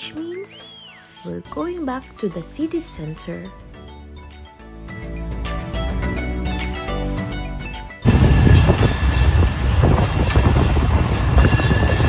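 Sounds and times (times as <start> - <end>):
road train rumble: 8.0 - 12.0.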